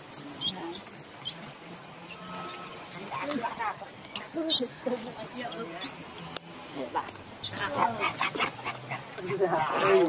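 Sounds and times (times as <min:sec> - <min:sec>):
baby monkey squealing: 0:00.1 - 0:01.4, 0:04.4 - 0:04.8, 0:07.4 - 0:08.4.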